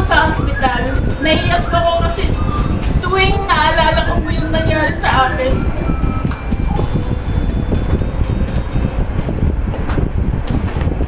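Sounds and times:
soft background music: 0.0s - 10.7s
low rumbling microphone noise: 0.0s - 11.0s.

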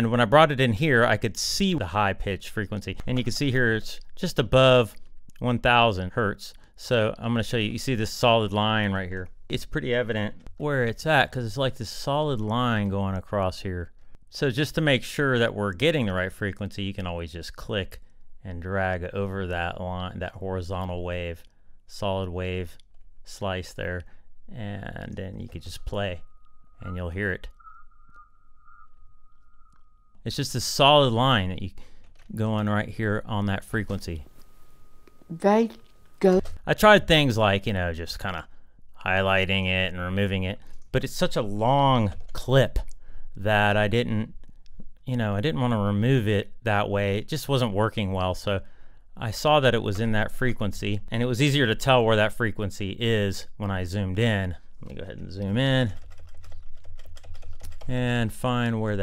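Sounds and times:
computer keyboard clicks: 56.0s - 57.9s.

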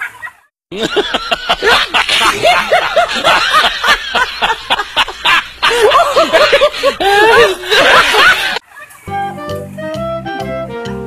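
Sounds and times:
person laughing: 0.7s - 8.6s.

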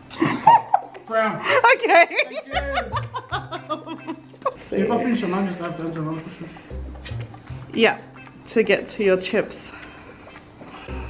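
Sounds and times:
background music: 0.0s - 11.0s
people laughing: 0.1s - 6.6s
low bass notes: 6.7s - 8.4s.

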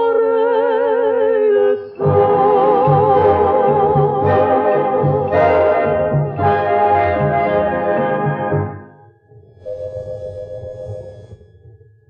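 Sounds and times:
orchestra sustained chord: 2.0s - 8.9s.

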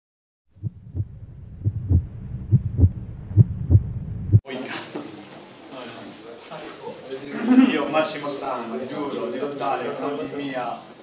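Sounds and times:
heartbeat thumps: 0.5s - 4.4s
faint low hum: 0.6s - 4.4s.

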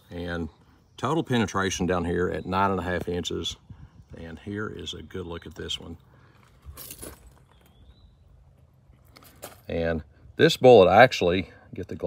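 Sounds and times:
faint high chirp: 7.4s - 8.4s.

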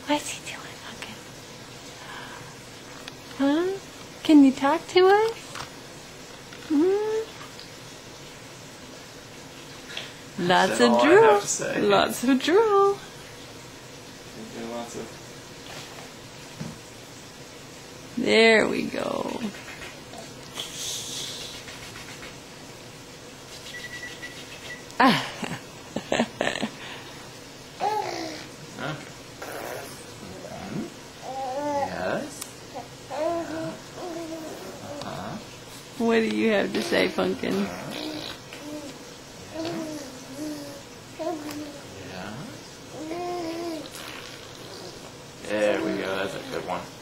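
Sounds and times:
low background hiss: 0.0s - 47.0s
baby cooing: 27.8s - 28.6s, 29.4s - 32.0s, 32.7s - 35.4s, 36.8s - 41.9s, 42.9s - 45.1s
baby gurgling: 27.8s - 28.6s, 29.4s - 32.0s, 32.7s - 35.4s, 36.8s - 41.9s, 42.9s - 45.1s.

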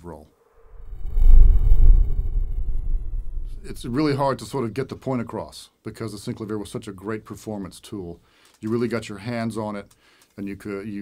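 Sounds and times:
deep cinematic rumble: 0.6s - 4.4s.

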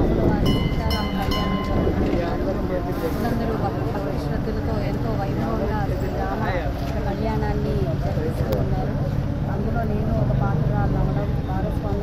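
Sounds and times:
heavy low rumble: 0.0s - 4.8s
woman speaking into microphones: 0.0s - 6.4s.

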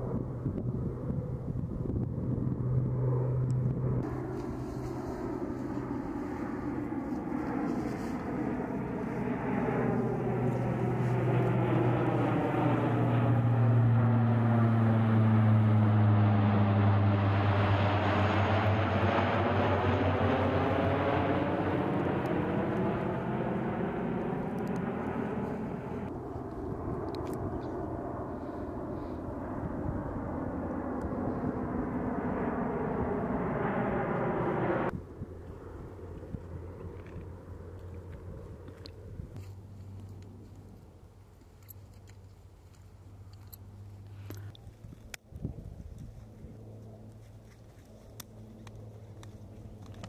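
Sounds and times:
propeller aircraft droning overhead: 0.0s - 50.0s.

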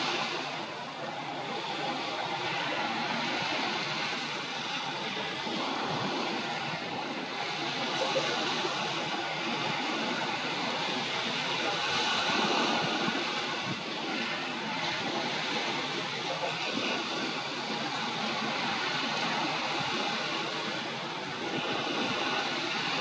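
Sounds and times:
steady rushing noise: 0.0s - 23.0s.

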